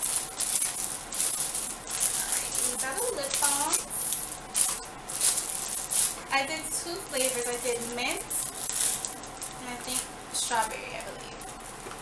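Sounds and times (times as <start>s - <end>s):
plastic wrapping crinkling: 0.0s - 12.0s.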